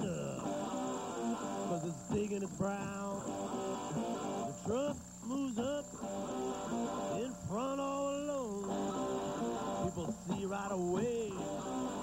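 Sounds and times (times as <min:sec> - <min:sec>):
guitar: 0:00.0 - 0:12.0
man singing blues-rock: 0:00.0 - 0:12.0.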